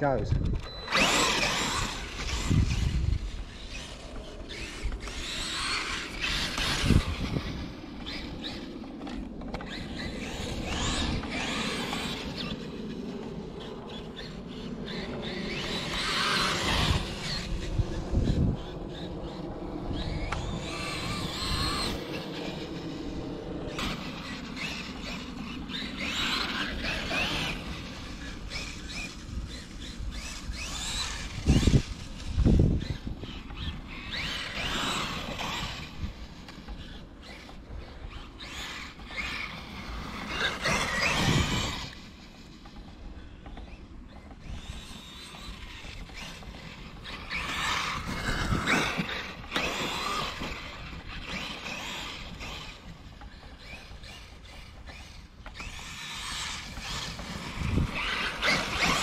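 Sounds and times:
electric motor whine: 0.0 - 59.0.

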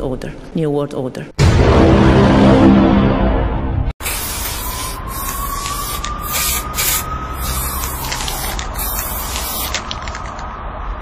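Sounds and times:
spray-paint can hissing: 4.0 - 10.3.

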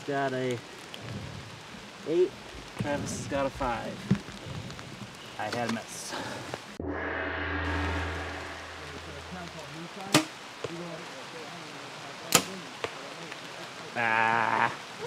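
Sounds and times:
steady low hum: 6.8 - 9.8
bowstring sharp crack: 10.1 - 10.4.

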